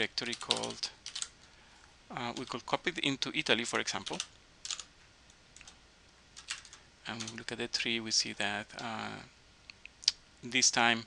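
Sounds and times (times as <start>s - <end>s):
quiet keyboard keystrokes: 0.2s - 1.3s, 2.3s - 2.6s, 4.0s - 4.9s, 6.4s - 7.5s.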